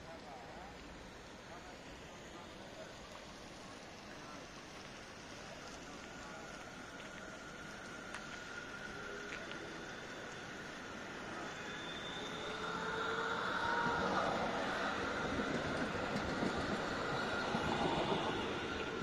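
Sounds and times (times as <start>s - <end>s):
tram passing by: 0.0s - 19.0s
high wheel whine: 6.2s - 19.0s.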